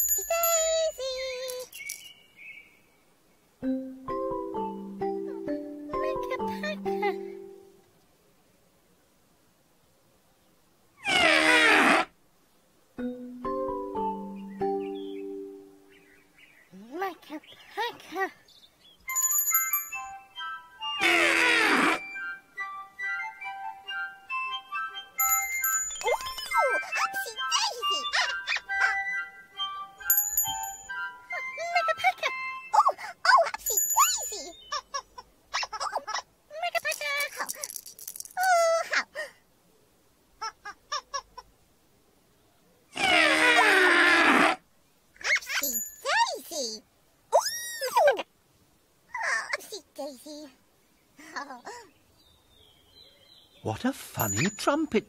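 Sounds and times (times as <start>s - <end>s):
gentle music with chiming tones: 3.6s - 7.8s, 13.0s - 16.0s, 19.1s - 21.0s, 22.0s - 33.0s, 33.6s - 34.7s, 54.2s - 55.0s.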